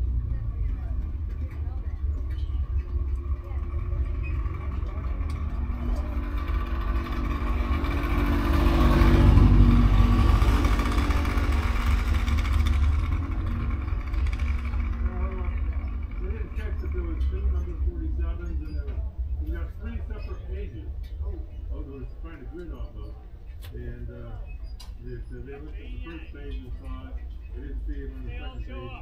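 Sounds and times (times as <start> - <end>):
faint voices: 0.0 - 8.9, 9.6 - 29.0
race car engines idling: 0.0 - 29.0
race car passing: 3.2 - 17.1.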